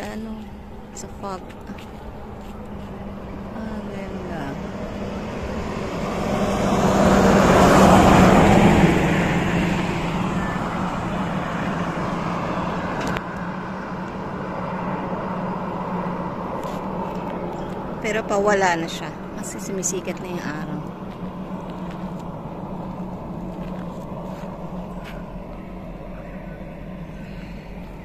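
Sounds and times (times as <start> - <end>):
low hum: 0.0 - 28.0
vehicle passing: 0.0 - 28.0.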